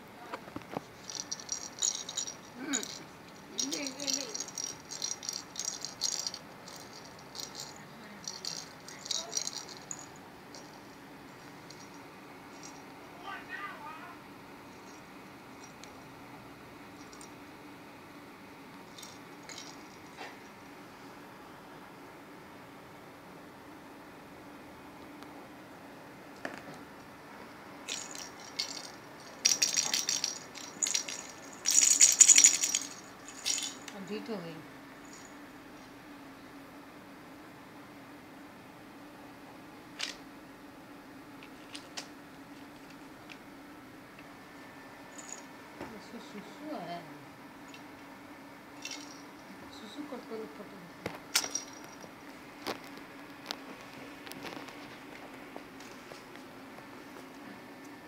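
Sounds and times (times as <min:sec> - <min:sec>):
rattle in plastic toy ball: 0:00.7 - 0:12.9, 0:18.9 - 0:20.4, 0:27.9 - 0:34.1, 0:45.1 - 0:45.5, 0:48.8 - 0:49.4.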